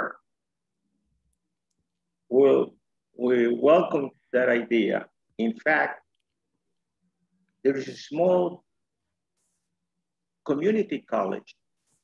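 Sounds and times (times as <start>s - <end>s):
person speaking: 7.5s - 9.8s.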